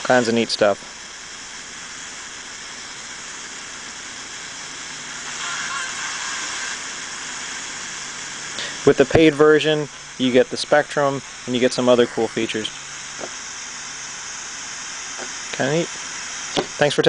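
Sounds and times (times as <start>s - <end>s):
radio static hissing: 0.0s - 17.0s.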